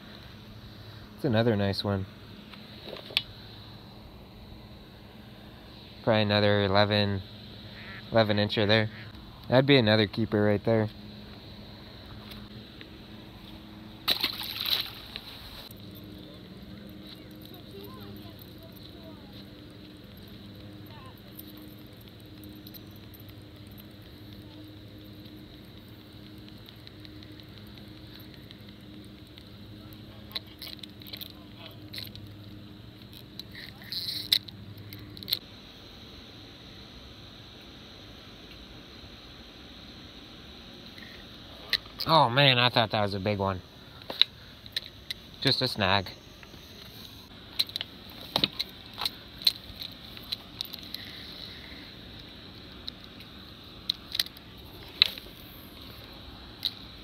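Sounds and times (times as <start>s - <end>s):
faint low hum: 0.0s - 57.0s
fish splashing into water: 14.0s - 15.7s.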